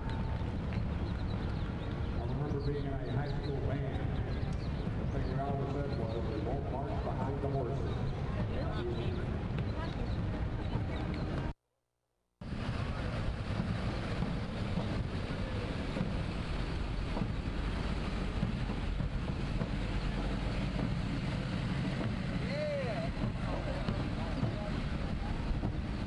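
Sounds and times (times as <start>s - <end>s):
wind buffeting microphone: 0.0s - 11.5s, 12.4s - 26.0s
faint voices: 0.0s - 11.6s, 12.5s - 26.0s.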